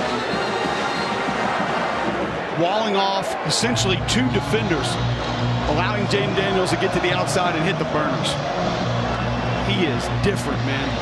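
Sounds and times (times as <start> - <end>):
music: 0.0 - 2.6, 3.3 - 11.0
stadium crowd noise: 0.0 - 11.0.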